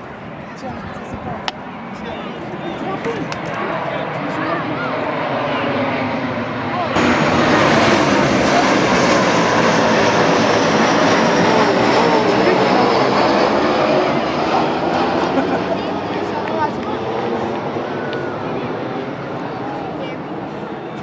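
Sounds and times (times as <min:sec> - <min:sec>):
jet airplane passing overhead: 0:00.0 - 0:21.0.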